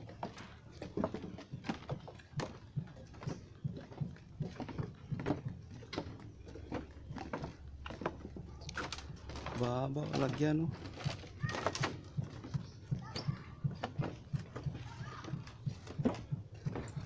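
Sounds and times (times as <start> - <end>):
footsteps on wooden boardwalk: 0.0 - 17.0
man's voice: 9.5 - 10.8.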